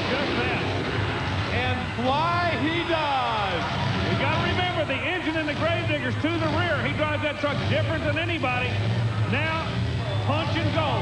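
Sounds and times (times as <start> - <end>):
crowd noise: 0.0 - 11.0
monster truck engines: 0.0 - 11.0.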